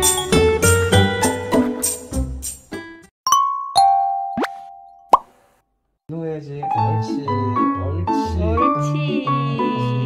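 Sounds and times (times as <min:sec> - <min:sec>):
cheerful background music: 0:00.0 - 0:04.9, 0:06.6 - 0:10.0.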